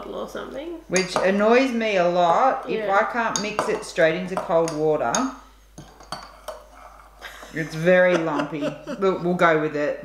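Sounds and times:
metal spoon clinking glass: 4.4s - 6.7s.

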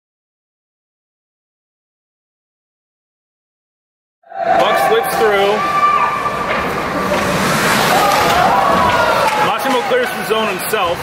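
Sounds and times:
ice rink ambience: 4.3s - 11.0s.

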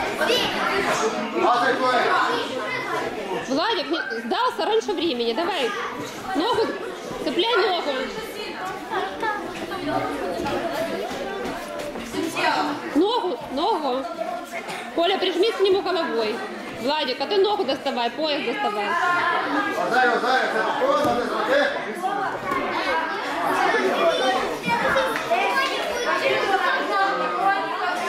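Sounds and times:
chatter of many voices: 0.0s - 28.0s.

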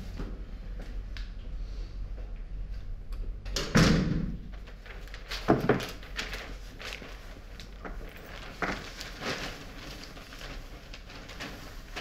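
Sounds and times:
door shutting with thud: 3.6s - 4.4s.

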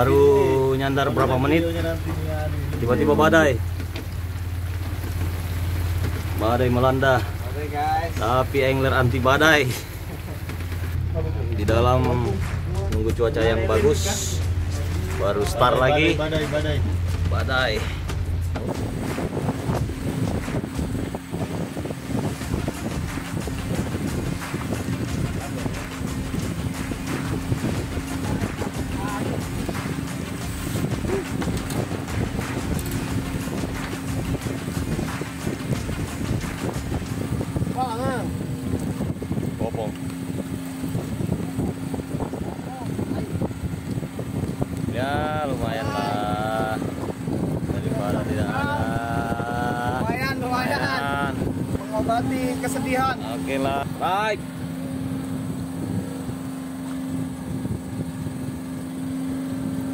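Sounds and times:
boat engine humming: 0.0s - 59.9s
wind and sea rushing: 0.0s - 59.9s.

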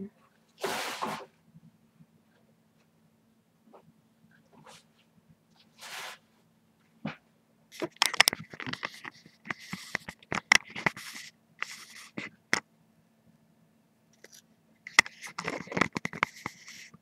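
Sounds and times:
craft items rustling and crackling: 7.7s - 12.3s.

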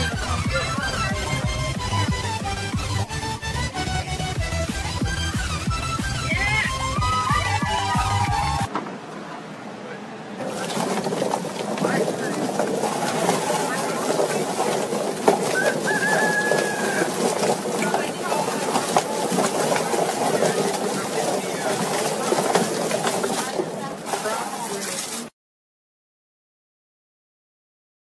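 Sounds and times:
poultry plucker clattering: 0.0s - 3.1s, 10.4s - 25.3s
voices: 0.0s - 25.3s
bird-like calls: 15.5s - 17.5s.

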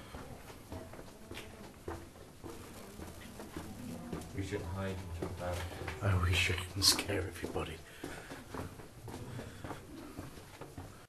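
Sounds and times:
faint footsteps in a tunnel: 0.0s - 11.0s
low background noise: 0.0s - 11.0s.

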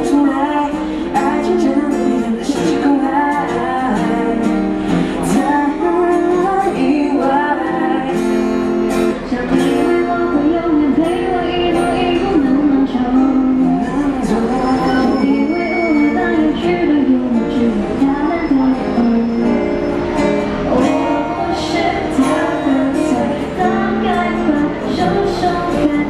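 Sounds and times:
woman singing a pop song: 0.0s - 20.0s, 20.7s - 26.0s
strummed acoustic guitar: 0.0s - 26.0s.

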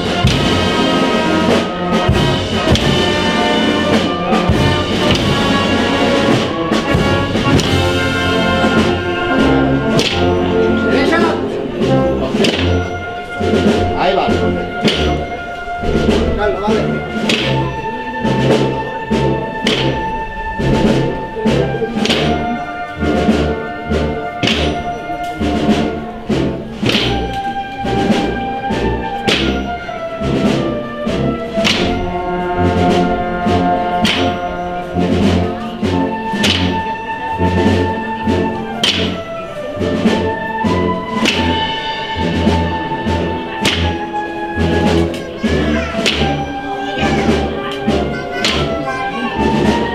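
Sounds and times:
steady drum beat: 0.0s - 49.9s
wind band playing a march: 0.0s - 49.9s.

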